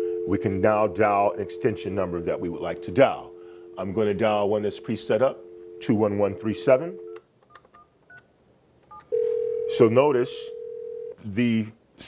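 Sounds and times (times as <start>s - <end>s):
phone dial tone: 0.0s - 8.2s, 8.9s - 9.8s, 10.5s - 11.2s.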